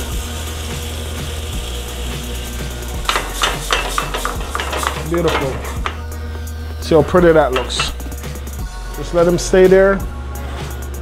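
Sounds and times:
light sizzle: 0.0 - 8.6
utensil scraping steel skillet: 3.0 - 6.2, 6.8 - 8.4.

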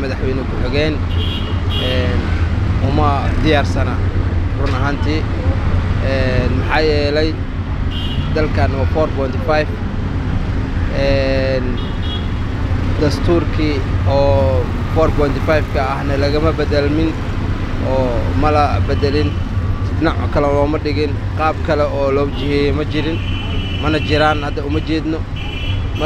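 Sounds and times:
man talking into a microphone: 0.0 - 1.0, 1.8 - 5.3, 6.0 - 7.4, 8.3 - 9.7, 10.9 - 11.8, 13.0 - 17.2, 17.8 - 23.2, 23.8 - 25.3
low rumble of street traffic: 0.0 - 26.0.

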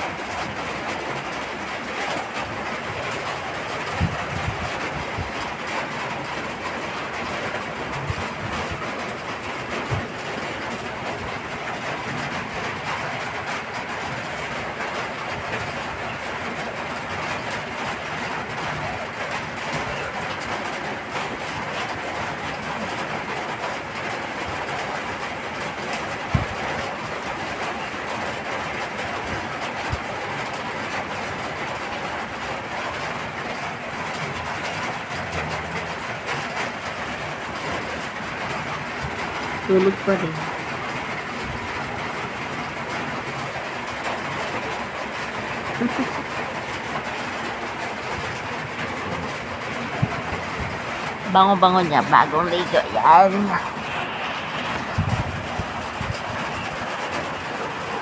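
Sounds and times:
steady background noise: 0.0 - 58.0.

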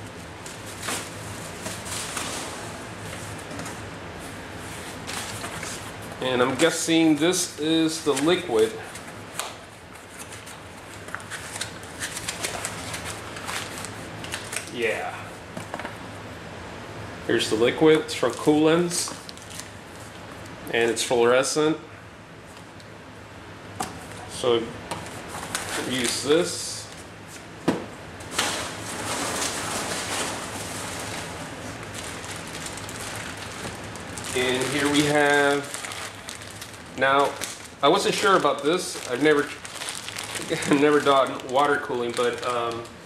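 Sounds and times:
packaging rustling and crinkling: 0.4 - 3.8, 4.7 - 6.7, 8.0 - 14.8, 18.2 - 20.2, 25.0 - 27.4, 28.2 - 43.0.

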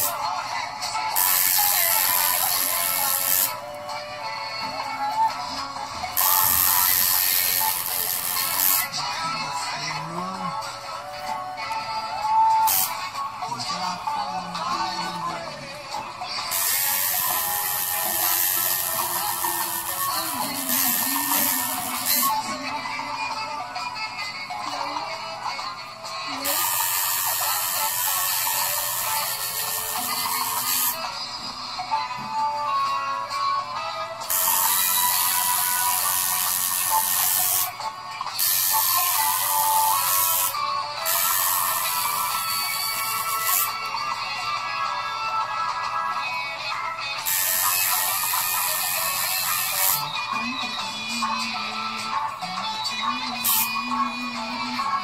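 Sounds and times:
tattoo machine buzzing: 0.0 - 0.4, 1.0 - 3.8, 6.0 - 8.9, 12.5 - 13.1, 16.4 - 22.8, 26.3 - 31.1, 34.2 - 43.9, 47.2 - 50.4, 53.4 - 54.1
background music: 0.0 - 55.0.

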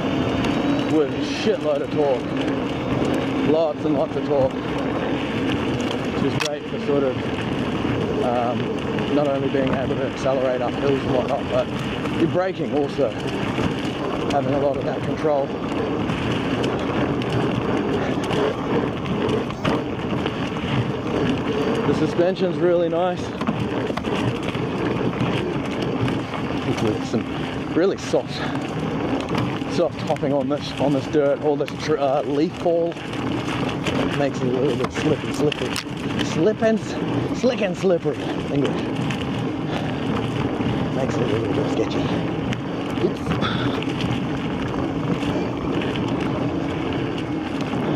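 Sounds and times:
tyre and wind noise: 0.0 - 47.9.

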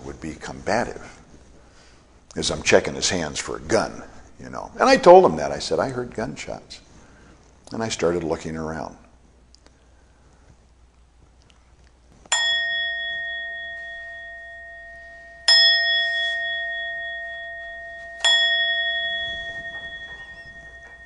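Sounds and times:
bowl bell ringing: 12.3 - 21.0.

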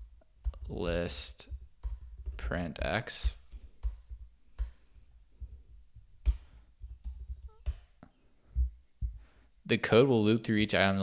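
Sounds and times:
soft low thumps: 5.3 - 7.7, 8.4 - 9.4.

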